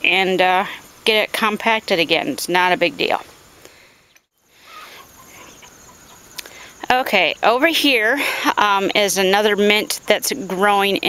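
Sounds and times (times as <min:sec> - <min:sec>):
insects chirping: 0:00.0 - 0:11.0
chickens clucking: 0:04.6 - 0:06.5.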